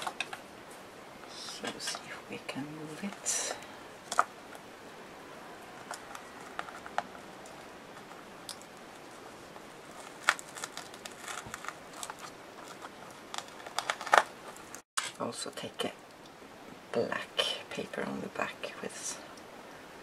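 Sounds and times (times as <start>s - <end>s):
paper rustling: 5.7s - 14.8s.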